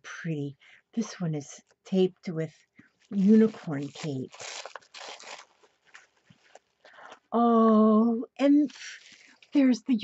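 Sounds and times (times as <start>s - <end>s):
parcel wrapping tearing: 3.0s - 6.8s, 8.6s - 9.6s
package rustling and clicking: 3.1s - 6.8s.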